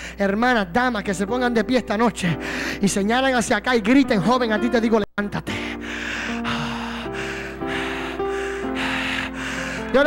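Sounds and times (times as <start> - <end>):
keyboard playing sustained chords: 0.7 - 10.0
heavy breathing into microphone: 2.4 - 2.8, 5.5 - 10.0.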